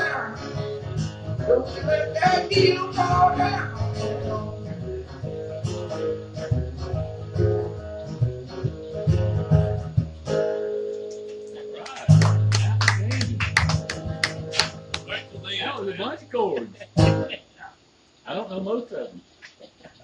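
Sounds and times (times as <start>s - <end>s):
voices: 0.0s - 0.6s, 11.5s - 20.0s
acoustic guitars playing: 0.0s - 17.7s
steady low hum: 11.6s - 20.0s.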